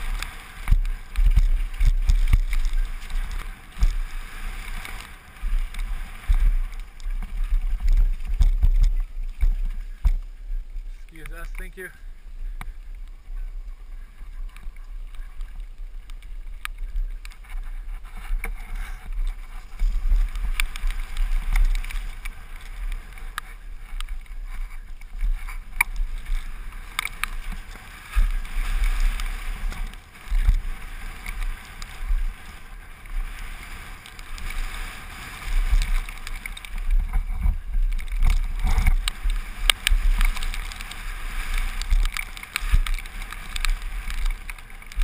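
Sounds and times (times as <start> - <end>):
bike clicks and rattles: 0.0 - 45.0
tyre and trail noise: 0.0 - 45.0
wind buffeting microphone: 0.0 - 45.0.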